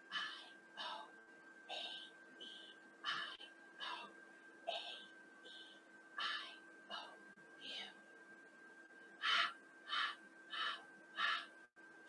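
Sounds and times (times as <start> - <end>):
woman whispering a chant: 6.2 - 8.0.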